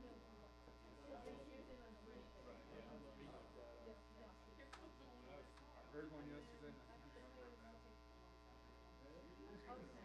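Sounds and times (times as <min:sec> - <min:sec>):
faint indistinct voices: 0:00.0 - 0:10.0.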